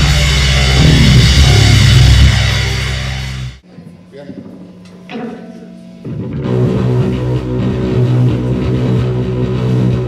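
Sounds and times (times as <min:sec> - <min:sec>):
rock band playing: 0:00.0 - 0:03.6, 0:06.0 - 0:10.0.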